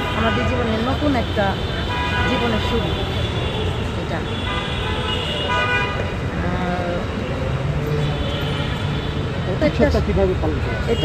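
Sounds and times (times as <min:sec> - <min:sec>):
car horns tooting: 0:00.0 - 0:06.2, 0:10.8 - 0:11.0
street traffic rumble: 0:00.0 - 0:11.0.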